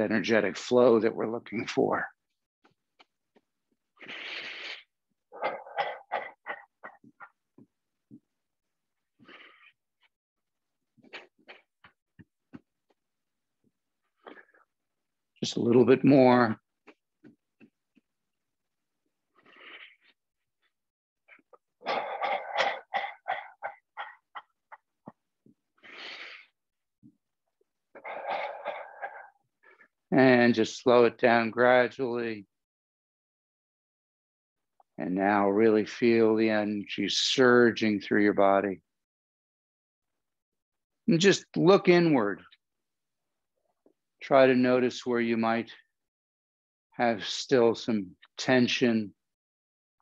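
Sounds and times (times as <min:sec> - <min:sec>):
man breathing hard: 0:04.0 - 0:04.9.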